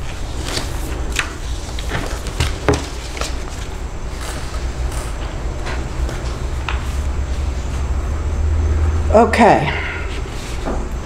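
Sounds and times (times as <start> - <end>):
low rumble of background noise: 0.0 - 11.0.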